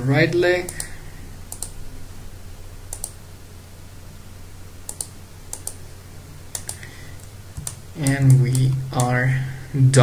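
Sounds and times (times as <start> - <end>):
faint steady low hum: 0.0 - 10.0
computer mouse button clicking: 1.5 - 1.8, 2.9 - 3.2, 4.9 - 5.8, 6.5 - 6.9.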